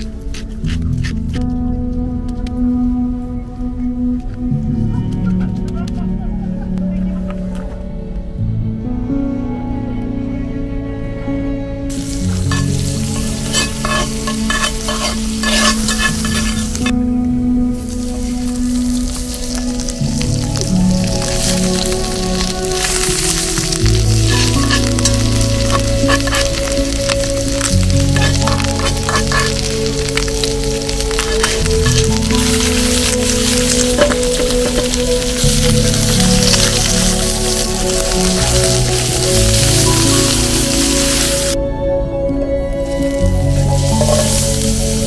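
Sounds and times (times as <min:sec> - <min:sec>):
background music: 0:00.0 - 0:45.0
meat sizzling in hot oil: 0:11.9 - 0:17.0, 0:17.8 - 0:41.6, 0:42.8 - 0:45.0.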